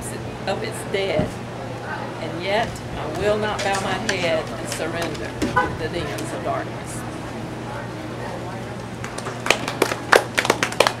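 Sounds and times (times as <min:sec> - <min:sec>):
small audience clapping: 0:08.9 - 0:11.0.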